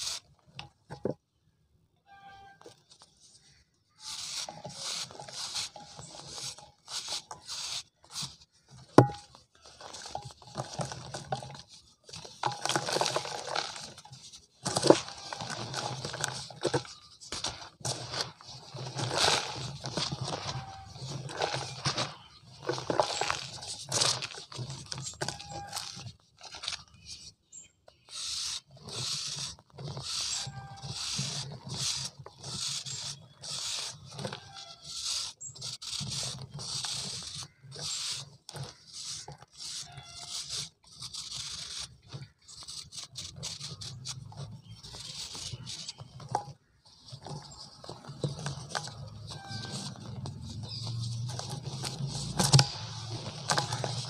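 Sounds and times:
fingers crumbling cement powder: 2.9s - 54.0s
knife scraping cement: 3.9s - 27.4s, 28.0s - 54.0s.

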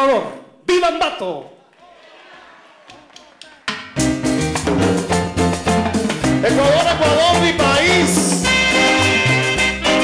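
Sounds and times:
latin dance orchestra playing: 3.6s - 10.0s.

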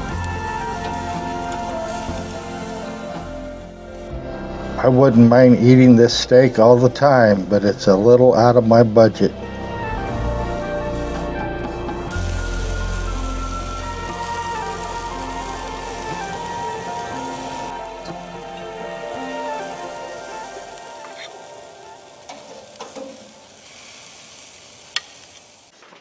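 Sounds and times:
steak sizzling on grill: 0.0s - 4.4s, 9.4s - 25.7s
background music: 0.0s - 23.7s.

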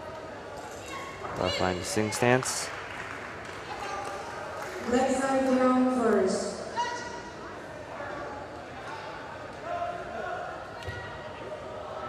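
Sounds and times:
faint indistinct voices: 3.4s - 12.0s.

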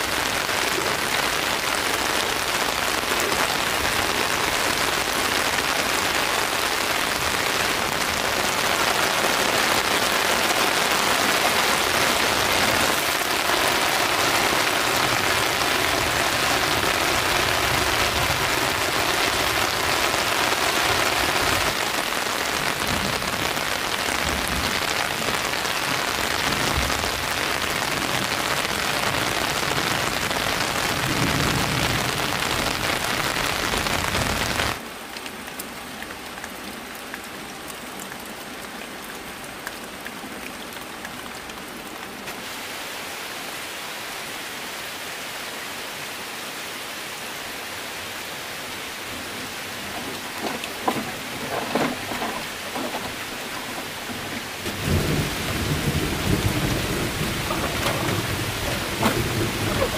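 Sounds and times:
steady rain falling: 0.0s - 59.9s.

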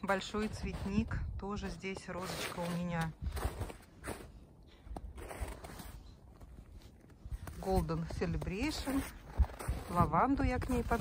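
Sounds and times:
footsteps in snow: 0.0s - 11.0s.

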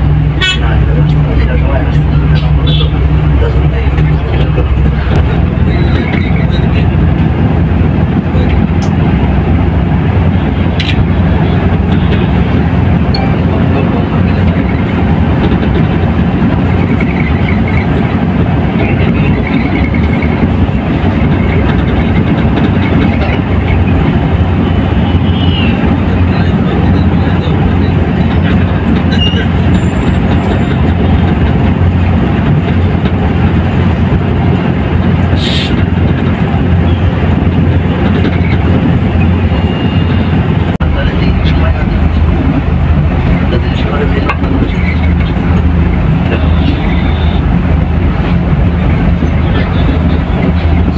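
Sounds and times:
coach engine and road noise: 0.0s - 50.9s.

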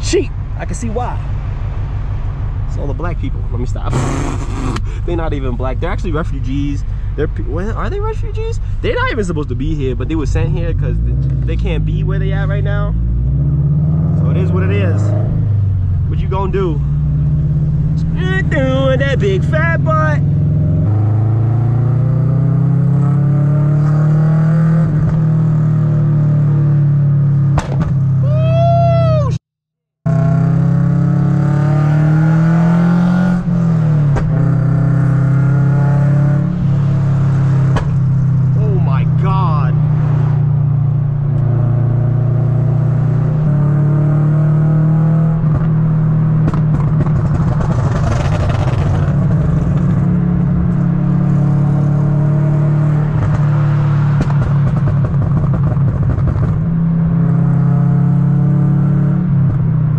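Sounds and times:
car exhaust drone: 0.0s - 29.3s, 30.1s - 59.9s.

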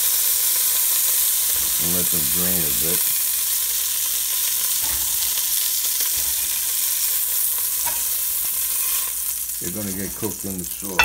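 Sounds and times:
sausages sizzling in oil: 0.0s - 11.0s.

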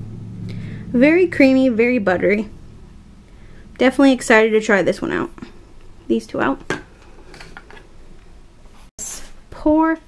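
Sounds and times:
low room noise: 0.0s - 10.0s.

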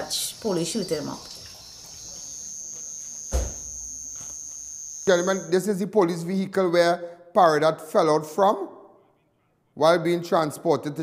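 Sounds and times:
insects trilling: 0.0s - 5.6s
dull thump: 3.3s - 3.6s.

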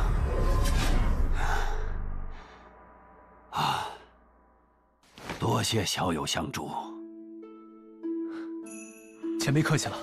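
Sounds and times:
film score music: 0.0s - 10.0s.

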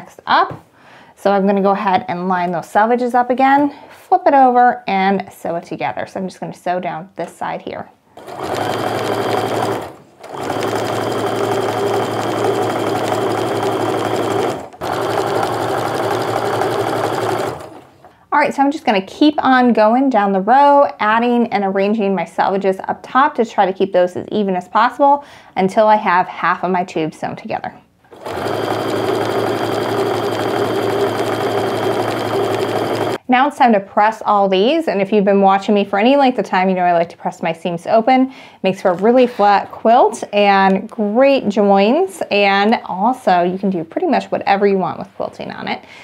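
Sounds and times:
sewing machine stitching: 8.2s - 18.1s, 28.1s - 33.2s.

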